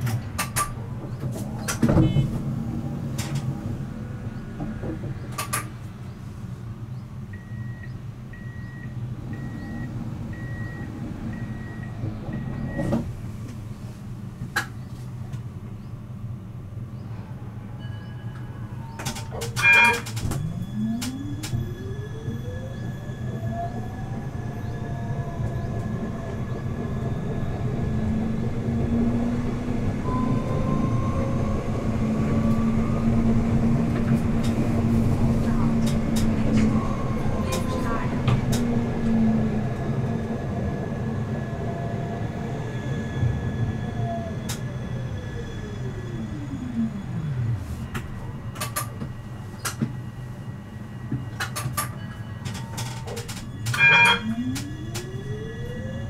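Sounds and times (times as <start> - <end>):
tram electric drive whining: 0.0 - 56.0
wheels rumbling on rails: 0.0 - 56.0.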